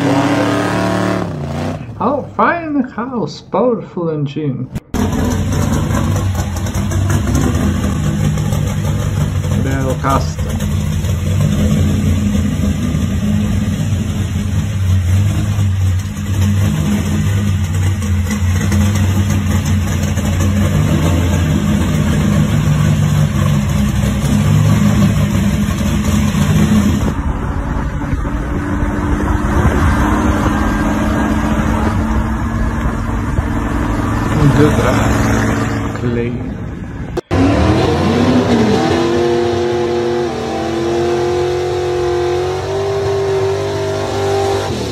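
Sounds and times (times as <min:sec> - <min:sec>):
car engine running steadily: 0:04.8 - 0:44.9.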